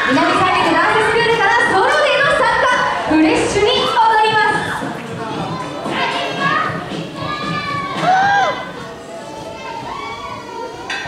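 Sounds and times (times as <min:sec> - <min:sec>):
children shouting: 0:03.7 - 0:11.0.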